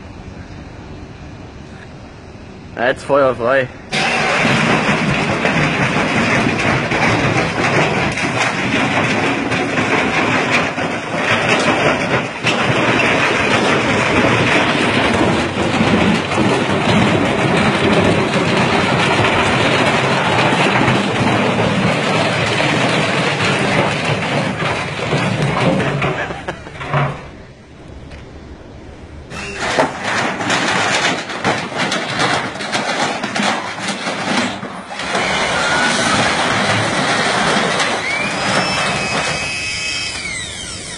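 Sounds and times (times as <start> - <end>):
washing machine clattering and rattling: 3.9 - 27.8, 29.2 - 40.9.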